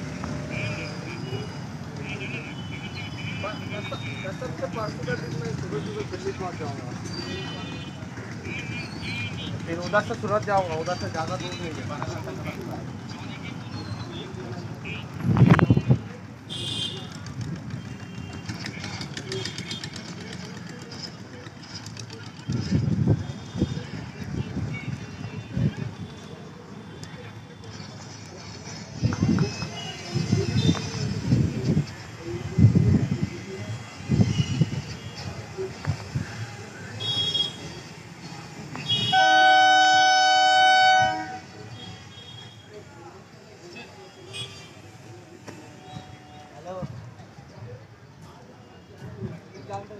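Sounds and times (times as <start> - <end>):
crossing background noise: 0.0 - 49.9
murmur of voices: 3.3 - 49.9
idling engines: 16.9 - 24.4
train horn blast: 38.9 - 41.5.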